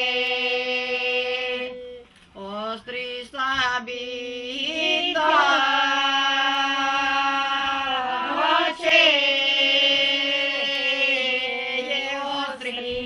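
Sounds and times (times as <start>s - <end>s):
unaccompanied singing: 0.0s - 13.0s.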